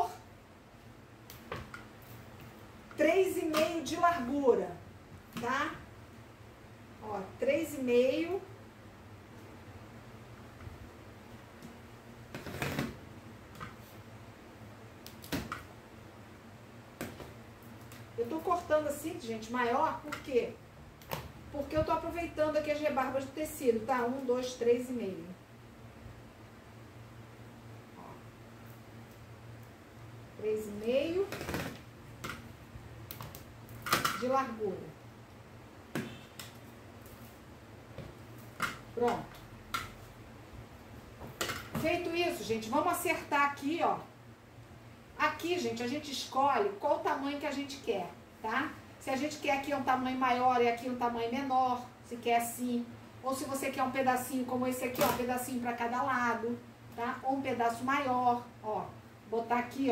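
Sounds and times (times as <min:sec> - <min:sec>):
faint low hum: 0:00.0 - 0:59.9.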